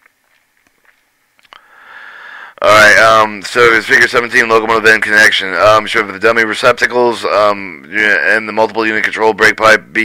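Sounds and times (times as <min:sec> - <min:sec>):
soft drawn breath: 0:01.5 - 0:02.6.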